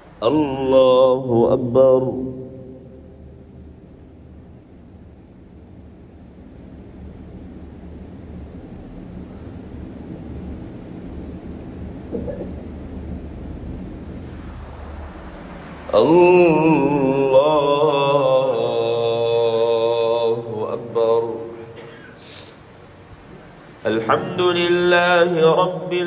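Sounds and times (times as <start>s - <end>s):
low steady background rumble: 0.0s - 26.0s.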